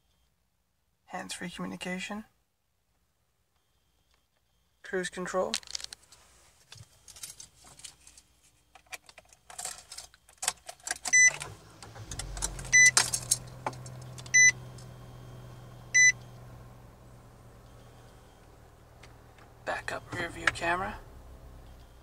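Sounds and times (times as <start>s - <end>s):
car engine starting and idling: 9.4s - 22.0s
warning chime beeping: 12.5s - 13.0s, 14.0s - 16.4s, 19.6s - 22.0s.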